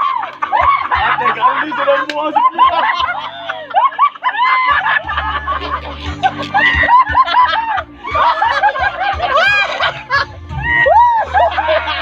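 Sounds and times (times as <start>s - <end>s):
people laughing loudly: 0.0s - 12.0s.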